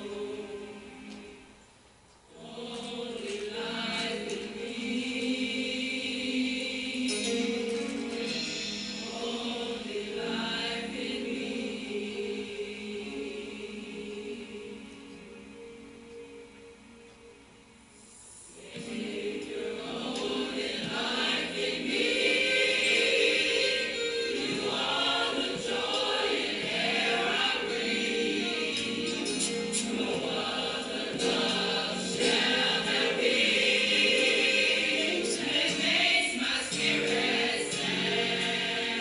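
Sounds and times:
choir singing gospel: 0.0s - 1.6s, 2.3s - 16.8s, 18.5s - 39.0s.

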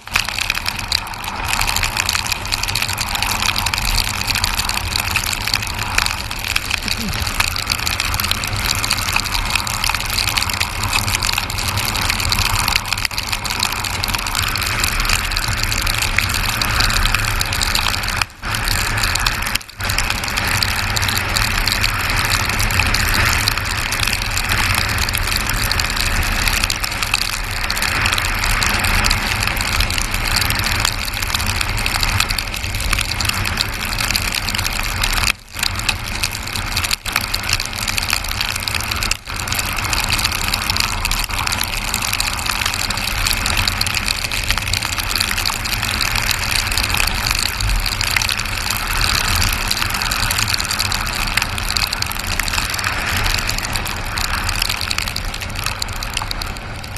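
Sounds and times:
tyre noise on wet road: 0.0s - 56.9s.

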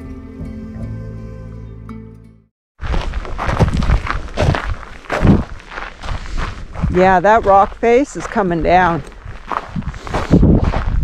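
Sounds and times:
footsteps walking: 2.8s - 11.0s.

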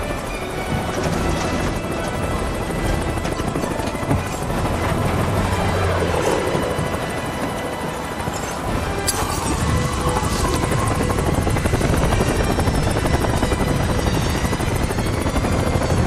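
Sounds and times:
dramatic film music: 0.0s - 16.0s
helicopter rotor and engine: 0.0s - 16.0s.

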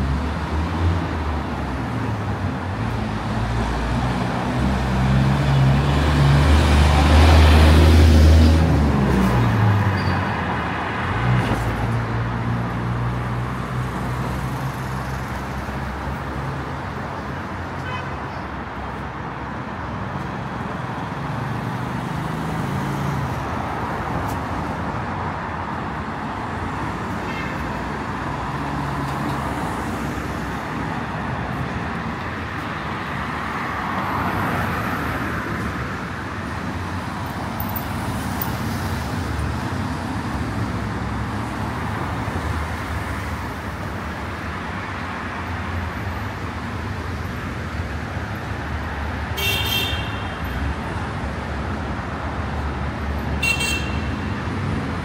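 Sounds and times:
road traffic: 0.0s - 55.0s.

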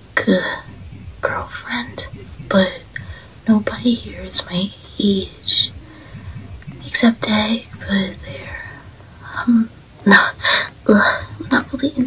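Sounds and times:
person whispering: 0.3s - 9.5s, 10.9s - 12.0s.

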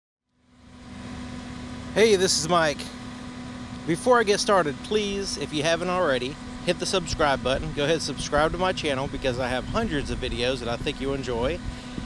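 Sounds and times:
steady mechanical hum: 0.3s - 12.0s.

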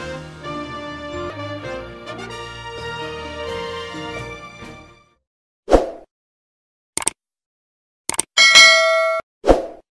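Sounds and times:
bell-like notification ding: 8.4s - 9.2s.

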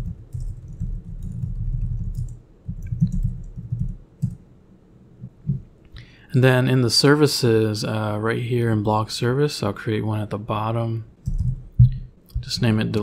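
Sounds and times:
computer keyboard typing: 0.0s - 4.4s, 11.2s - 12.0s.

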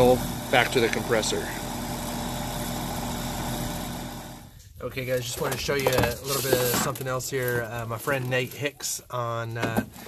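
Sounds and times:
air conditioning unit running: 0.0s - 4.6s.

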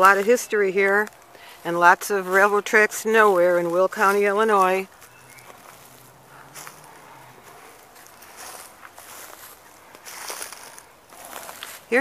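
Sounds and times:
footsteps through dry leaves: 0.0s - 12.0s.

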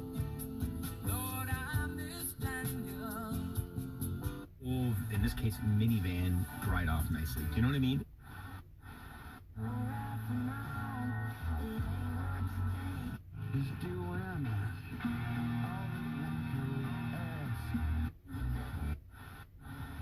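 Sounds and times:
car radio playing music: 0.0s - 20.0s.

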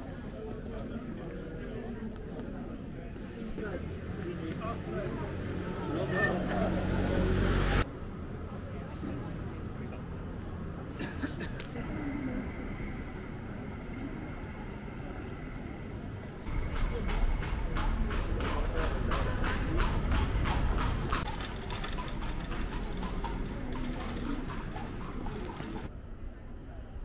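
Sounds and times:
hooves clip-clopping on cobblestones: 0.0s - 6.8s, 11.6s - 25.9s
carriage wheels rumbling: 11.9s - 25.9s.

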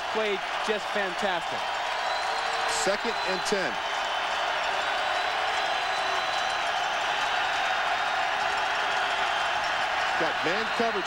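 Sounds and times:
large stadium crowd noise: 0.0s - 11.0s.

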